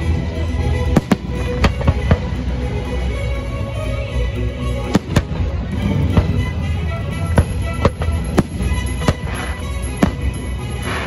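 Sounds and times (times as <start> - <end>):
show music: 0.0 - 11.0
fireworks bursting: 0.9 - 2.5, 4.9 - 11.0.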